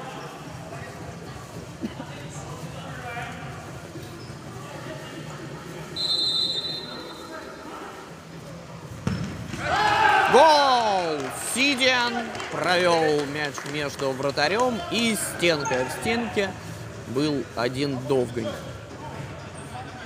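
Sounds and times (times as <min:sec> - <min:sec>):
referee's whistle: 0:06.0 - 0:07.3
crowd shouting: 0:09.6 - 0:11.0.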